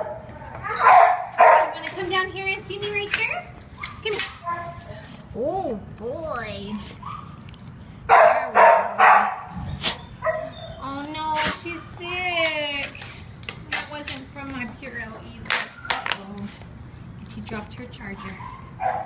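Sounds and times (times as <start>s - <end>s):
dog barking: 0.0s - 1.8s, 8.1s - 9.5s, 10.2s - 10.6s, 18.2s - 19.0s
dog whining and yelping: 9.5s - 11.0s.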